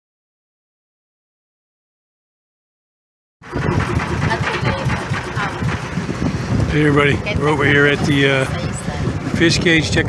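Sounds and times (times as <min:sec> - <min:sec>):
dense outdoor noise: 0:03.4 - 0:10.0
low rumble: 0:03.4 - 0:10.0
indistinct voices: 0:04.1 - 0:05.8.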